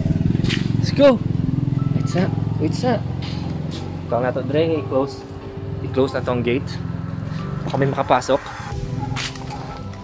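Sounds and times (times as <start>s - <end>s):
small motorcycle engine idling: 0.0s - 7.6s.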